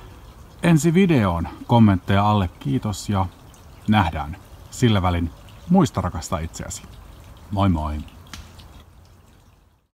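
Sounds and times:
faint background hiss: 0.0s - 9.9s.

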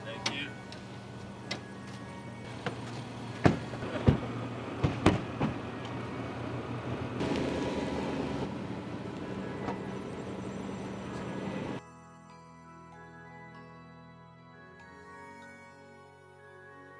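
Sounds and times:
car engine moving off: 0.3s - 11.8s
car doors thumping shut: 2.5s - 5.8s.

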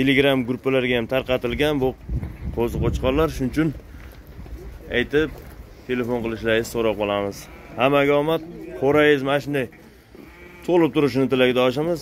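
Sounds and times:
sheep bleating: 6.8s - 9.2s, 10.0s - 11.6s.

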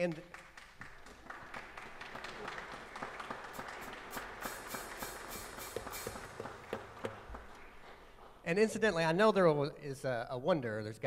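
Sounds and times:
congregation applauding: 0.0s - 8.4s.

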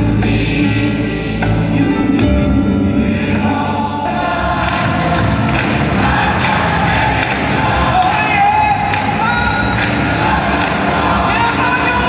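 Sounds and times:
gospel choir singing: 0.0s - 12.0s
live band playing: 0.0s - 12.0s.

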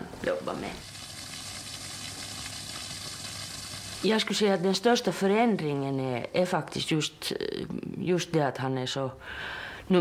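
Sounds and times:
steady hiss: 0.7s - 4.3s.

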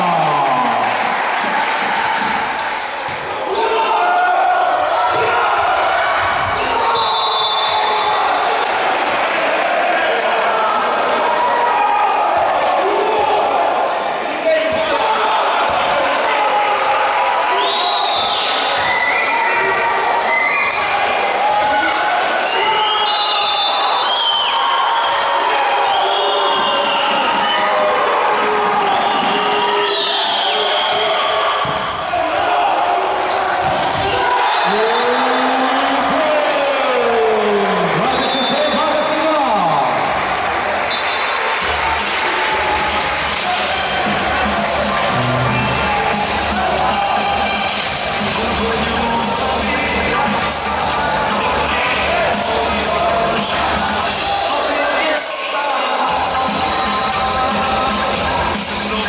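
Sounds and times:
volleyball being struck: 45.1s - 46.0s.

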